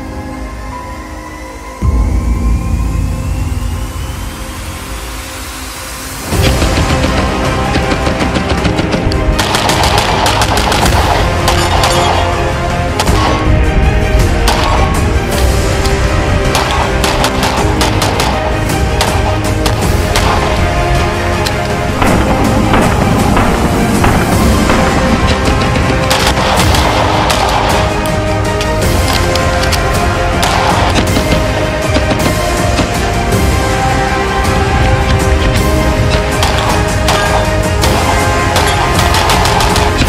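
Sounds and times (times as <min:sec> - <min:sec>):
background music: 0:00.0 - 0:40.0
gunshots: 0:06.4 - 0:13.6, 0:14.2 - 0:15.1, 0:15.9 - 0:20.8, 0:22.0 - 0:33.1, 0:35.0 - 0:40.0
rapid rifle gunfire: 0:08.3 - 0:12.4, 0:16.5 - 0:20.5, 0:22.0 - 0:28.0, 0:36.3 - 0:40.0.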